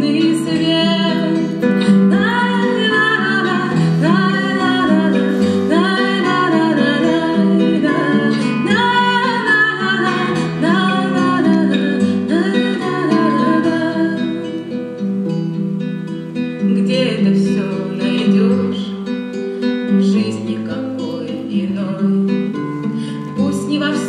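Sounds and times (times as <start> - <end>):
woman singing a lullaby: 0.0 - 15.2, 16.6 - 19.0, 20.0 - 24.0
acoustic guitar: 0.0 - 24.0.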